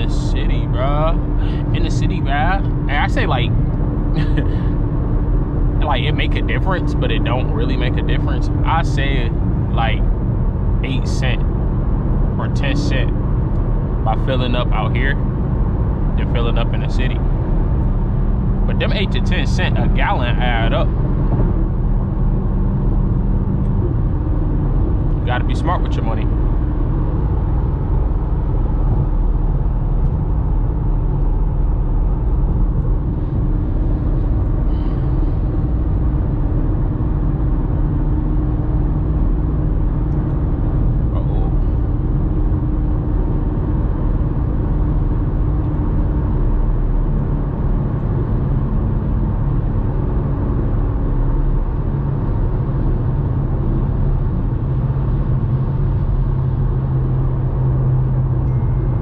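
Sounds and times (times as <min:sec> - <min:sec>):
car engine drone: 0:00.0 - 0:59.0
tyre and road noise: 0:00.0 - 0:59.0.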